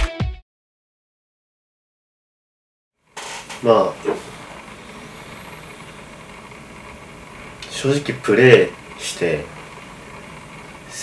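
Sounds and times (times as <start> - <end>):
room noise hiss: 3.0 - 11.0
faint hum: 3.1 - 11.0.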